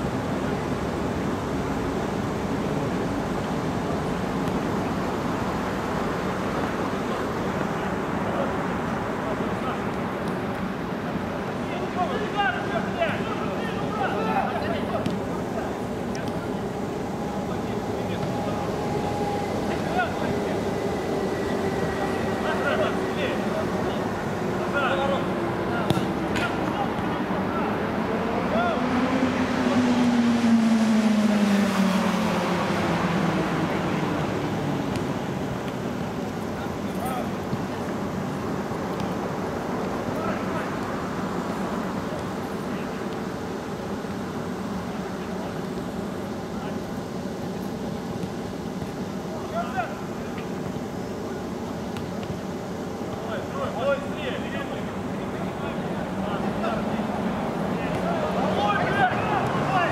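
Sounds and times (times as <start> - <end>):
steady background hum: 0.0 - 59.9
distant players shouting: 11.6 - 29.2, 52.9 - 59.9
motor vehicle passing: 16.5 - 36.2
ball kick knocks: 25.8 - 27.1.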